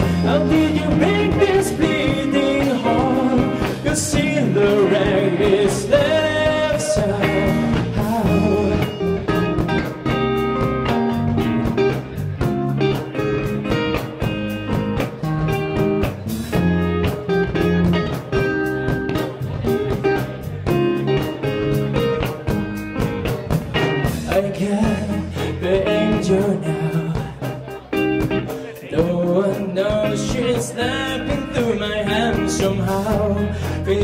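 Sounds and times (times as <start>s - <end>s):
bass guitar: 0.0s - 34.0s
electric guitar chords: 0.0s - 34.0s
steady drum beat: 0.0s - 34.0s.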